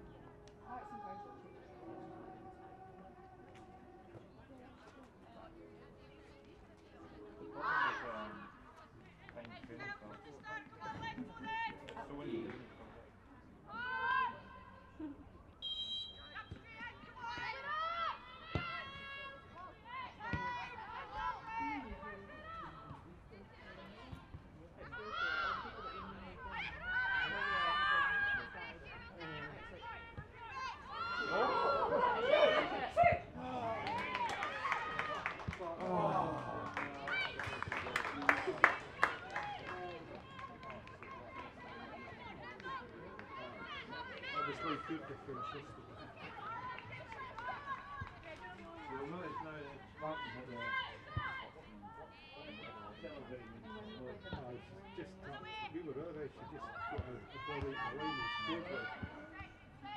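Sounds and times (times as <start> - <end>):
referee whistle blast: 15.6 - 16.5.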